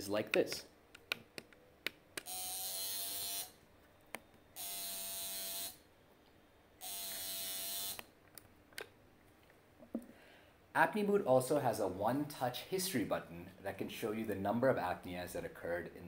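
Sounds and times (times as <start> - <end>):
vibration motor buzzing: 2.3 - 3.5, 4.6 - 5.8, 6.8 - 8.0.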